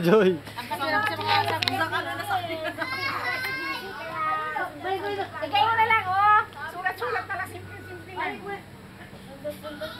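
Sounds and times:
adults talking: 0.0s - 9.9s
children calling and chattering: 0.0s - 9.9s.

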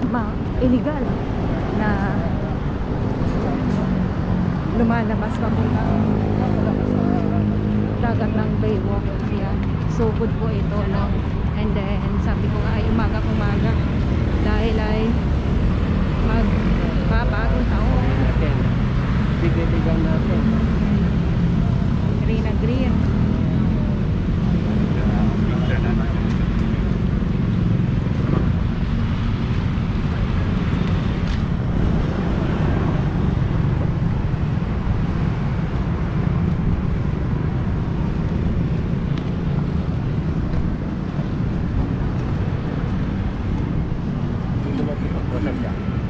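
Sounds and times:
indistinct voices: 0.0s - 15.2s, 16.1s - 21.1s
traffic rumble: 0.0s - 46.0s.

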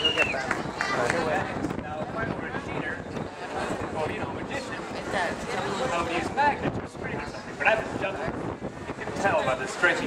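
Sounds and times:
people talking: 0.0s - 8.4s, 9.0s - 10.0s.

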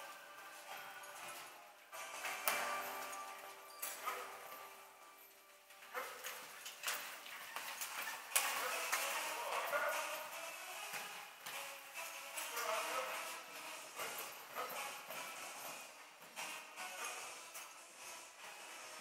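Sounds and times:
carriage rattling: 0.0s - 10.8s.

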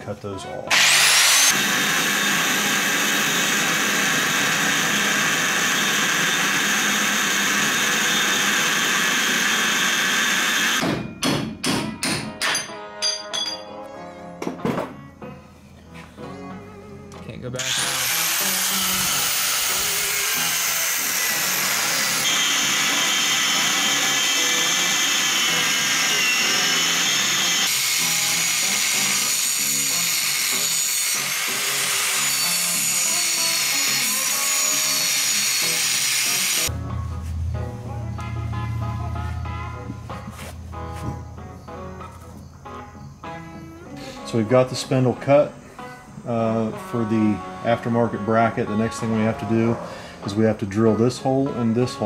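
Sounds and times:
background music with bass and guitar: 0.0s - 1.5s, 11.9s - 21.8s, 32.9s - 52.0s
angle grinder cutting steel: 0.7s - 10.8s, 17.6s - 36.7s.

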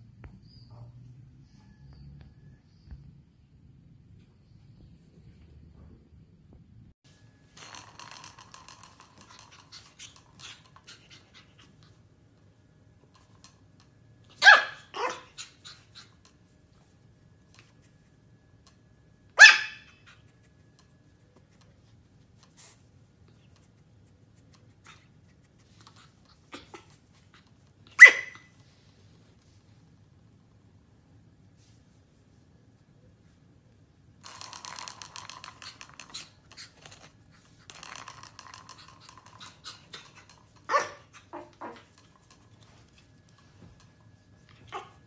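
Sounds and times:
clicking and rustling: 7.5s - 11.9s, 34.2s - 45.0s
puppy barking: 14.3s - 16.1s, 19.4s - 20.2s, 27.9s - 28.5s, 39.9s - 41.8s, 44.6s - 45.0s.

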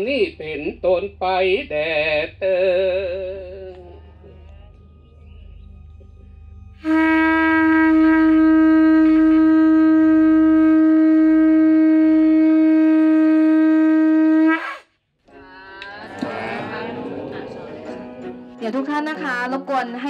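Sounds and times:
conch shell trumpet blowing: 6.8s - 14.8s.

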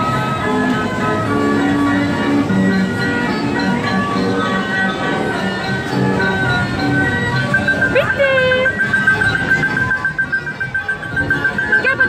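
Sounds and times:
tinny electronic ride jingle: 0.0s - 12.0s.

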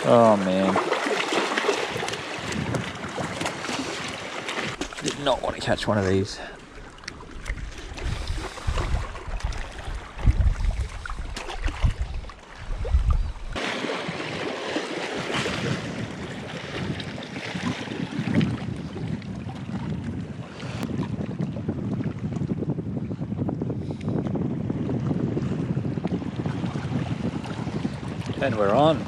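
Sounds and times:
waves lapping against rocks: 0.0s - 22.5s, 25.4s - 29.0s
wind buffeting microphone: 1.8s - 29.0s.

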